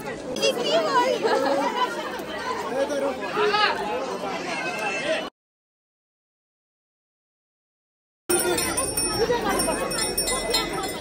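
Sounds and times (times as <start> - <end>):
people chattering: 0.0 - 5.3, 8.3 - 11.0.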